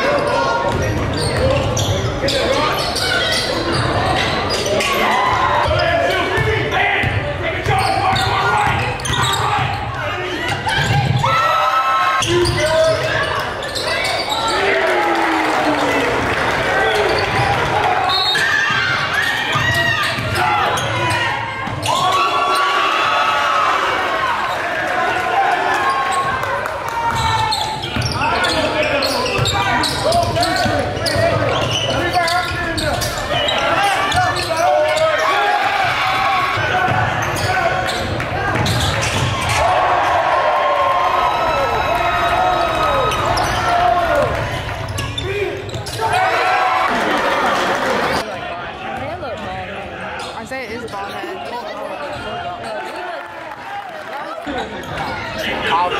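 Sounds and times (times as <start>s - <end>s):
people calling out and talking: 0.0s - 55.9s
basketball bouncing on wooden court: 0.6s - 1.9s, 35.8s - 39.5s.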